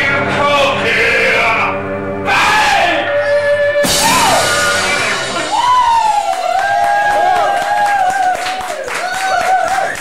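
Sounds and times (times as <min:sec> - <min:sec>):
rock band playing: 0:00.0 - 0:08.1.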